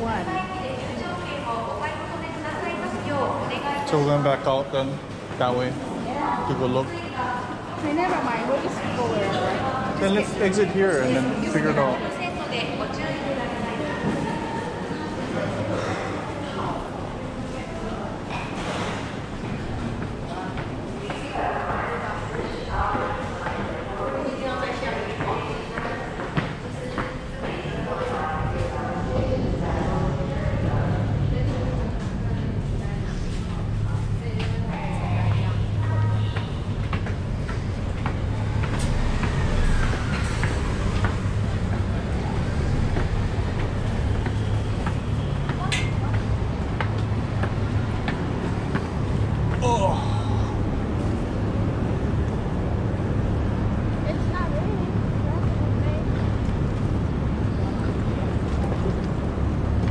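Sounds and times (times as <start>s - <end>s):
low rumble of city traffic: 0.0s - 59.9s
footsteps on concrete stairs: 36.2s - 49.7s.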